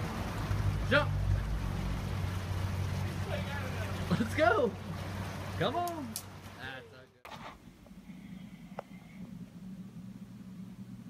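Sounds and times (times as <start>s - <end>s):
low rumble: 0.0s - 5.4s
creek water running over rocks: 0.0s - 6.9s.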